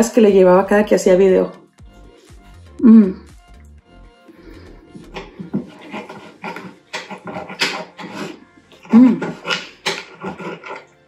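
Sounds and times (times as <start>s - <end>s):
metal spoon scooping on plate: 5.0s - 11.0s.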